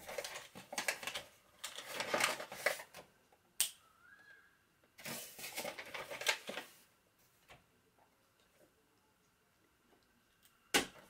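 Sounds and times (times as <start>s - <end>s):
paper bag rustling and crinkling: 0.0s - 3.0s, 5.0s - 6.9s.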